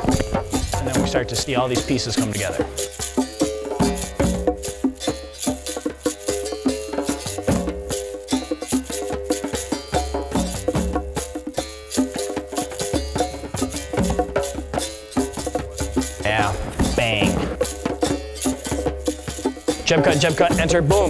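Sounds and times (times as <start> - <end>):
percussion-driven music: 0.0 - 21.0.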